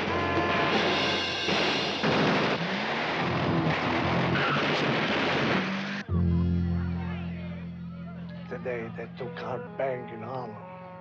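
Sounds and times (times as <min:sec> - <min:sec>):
car engine running hard: 0:01.6 - 0:08.4.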